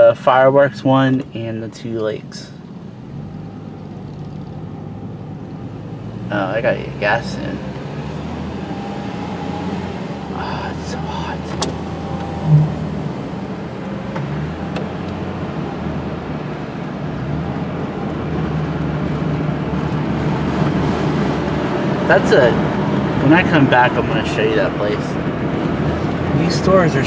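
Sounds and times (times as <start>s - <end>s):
car engine and road hum: 0.0s - 27.0s
short low tone: 11.0s - 13.1s.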